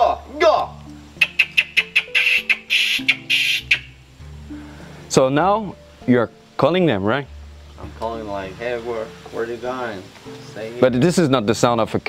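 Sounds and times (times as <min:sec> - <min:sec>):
background music: 0:00.0 - 0:12.0
harsh hissing calls: 0:00.0 - 0:12.0
man making mouth clicks: 0:01.2 - 0:03.9.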